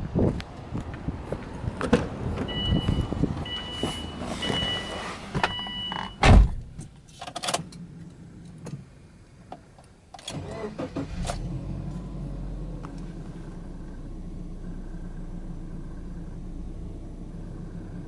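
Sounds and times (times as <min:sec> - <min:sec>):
car door shutting: 0:01.8 - 0:07.8
car warning chime beeping: 0:02.5 - 0:06.2.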